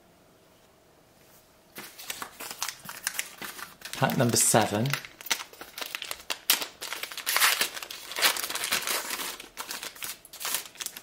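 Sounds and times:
wrapper crinkling and tearing: 1.8 - 11.0.

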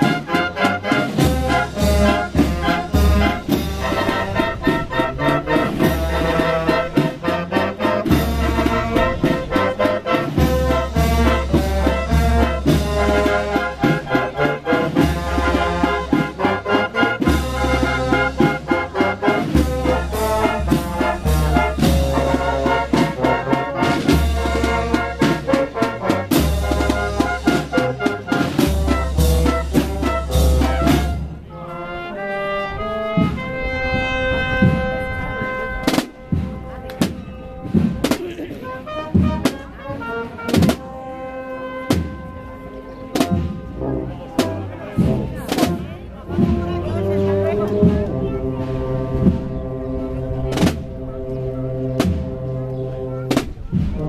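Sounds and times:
street brass band playing: 0.0 - 54.0.

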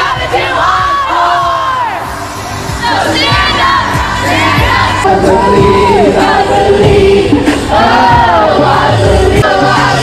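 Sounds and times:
cheerleaders shouting and cheering: 0.0 - 10.0
music playing: 0.0 - 10.0.

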